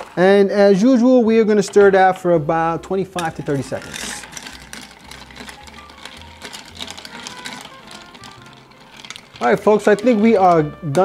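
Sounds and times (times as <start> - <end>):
ice cubes clinking in glass: 0.0 - 0.4, 3.2 - 11.0
quiet background music: 0.0 - 11.0.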